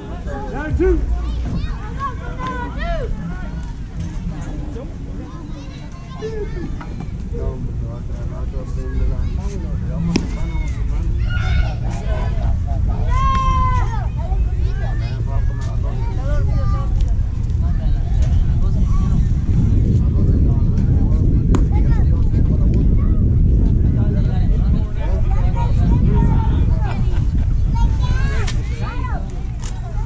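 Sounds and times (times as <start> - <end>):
wind rumbling on microphone: 0.0 - 30.0
loud drawn-out shout: 10.5 - 14.2.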